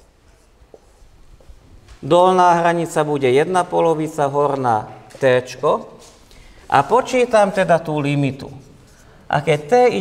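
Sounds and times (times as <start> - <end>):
marker writing on whiteboard: 0.0 - 1.1, 5.9 - 10.0.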